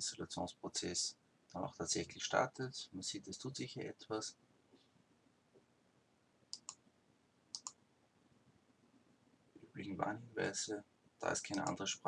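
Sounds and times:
computer mouse clicks: 6.5s - 6.8s, 7.5s - 7.8s, 11.5s - 11.8s.

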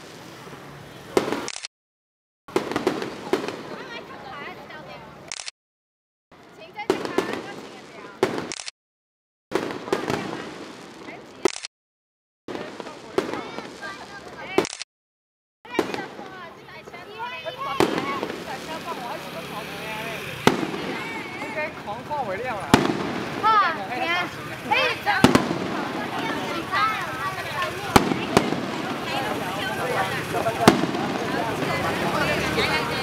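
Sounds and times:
fireworks bangs: 0.0s - 1.5s, 2.5s - 4.5s, 6.5s - 8.6s, 9.5s - 11.5s, 12.5s - 14.8s, 15.7s - 33.0s
fireworks cracks: 0.0s - 1.7s, 2.5s - 4.5s, 6.4s - 8.7s, 9.5s - 11.7s, 12.5s - 14.9s, 15.7s - 33.0s
people chattering: 2.8s - 5.4s, 6.4s - 8.6s, 9.6s - 11.6s, 12.5s - 14.8s, 15.7s - 33.0s.

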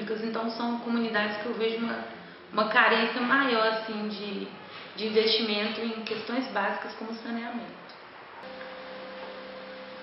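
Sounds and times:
steady hum: 8.4s - 10.0s.

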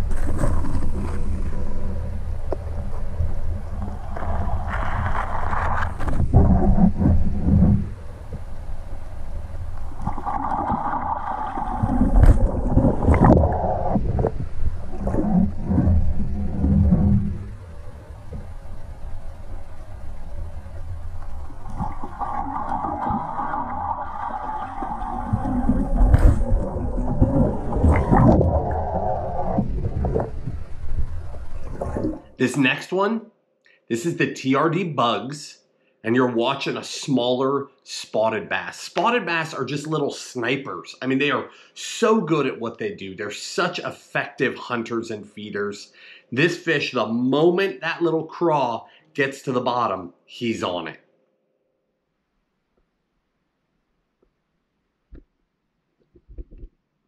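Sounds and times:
low underwater rumble: 0.0s - 32.4s
water gurgling: 0.0s - 33.0s.

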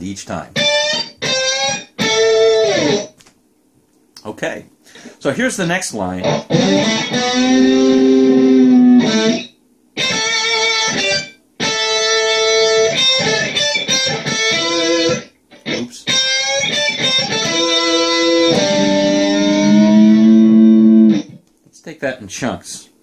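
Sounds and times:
distorted electric guitar solo: 0.6s - 3.2s, 6.2s - 21.4s.

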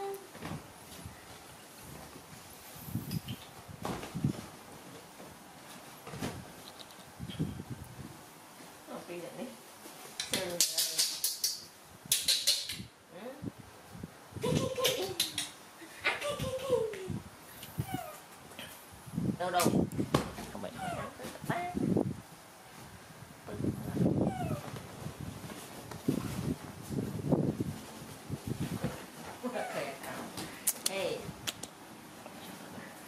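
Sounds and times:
monkey vocalizing: 20.8s - 21.2s, 24.3s - 24.6s.

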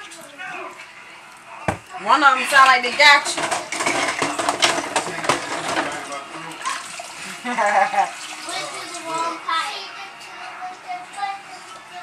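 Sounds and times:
water running at a sink: 2.5s - 9.9s
dishes clinking: 2.9s - 6.2s.

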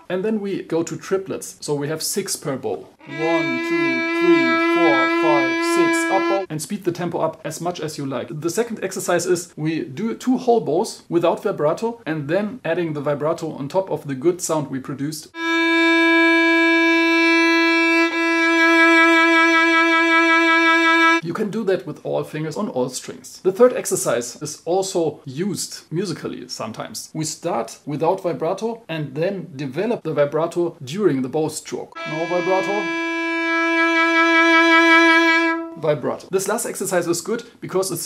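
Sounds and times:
violin long held note: 3.0s - 6.5s, 15.4s - 21.2s, 32.0s - 36.0s.

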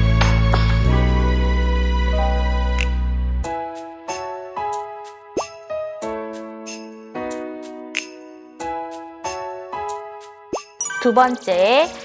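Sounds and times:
light children's music: 0.0s - 12.0s
rising pop sound effect: 10.6s - 11.4s.

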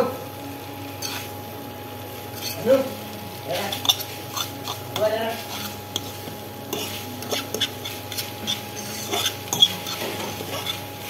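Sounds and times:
light sizzle: 0.0s - 11.0s
fork scraping and clinking on pan: 1.0s - 1.3s, 2.4s - 2.6s, 3.6s - 10.9s.

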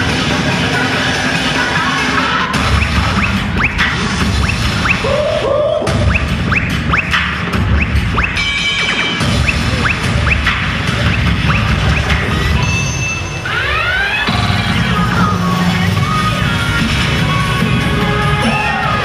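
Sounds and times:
loud dance music with heavy beat: 0.0s - 19.0s.

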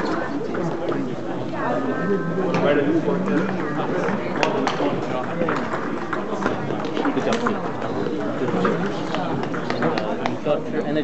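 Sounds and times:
murmur of voices: 0.0s - 11.0s
table tennis balls clicking: 4.1s - 10.4s.

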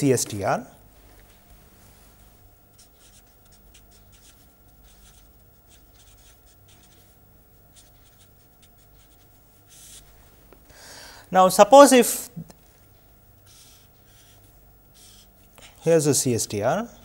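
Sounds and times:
felt-tip pen scratching on paper: 2.7s - 10.1s, 13.4s - 15.8s.

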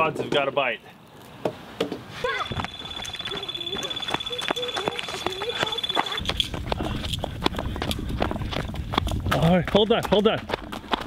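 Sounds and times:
excited voices: 2.2s - 6.3s
running footsteps: 2.3s - 11.0s
fast-pulsing electronic alarm tone: 2.5s - 6.3s.

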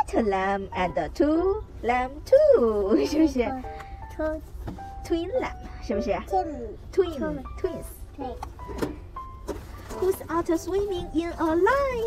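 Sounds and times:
soft taps and rustles: 4.2s - 5.0s.

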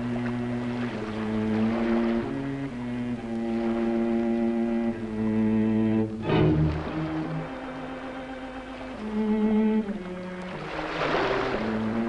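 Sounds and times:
rough low sound: 0.0s - 10.7s
cello bowing long notes: 0.0s - 12.0s.

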